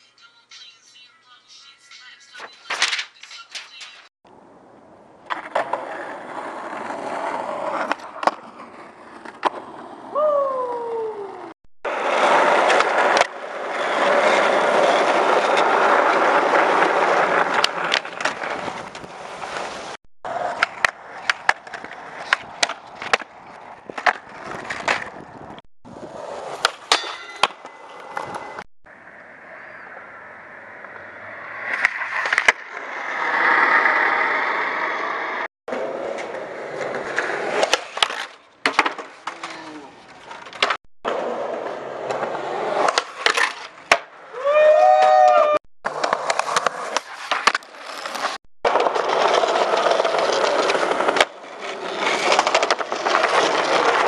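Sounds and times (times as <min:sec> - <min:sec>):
skateboard wheels rolling: 0:04.7 - 0:54.0
skateboard clicks and knocks: 0:05.2 - 0:10.2, 0:11.3 - 0:28.6, 0:30.8 - 0:54.0.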